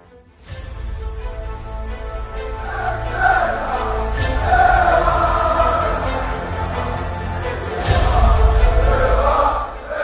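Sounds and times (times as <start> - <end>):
choir-like voices holding notes: 1.7 - 10.0.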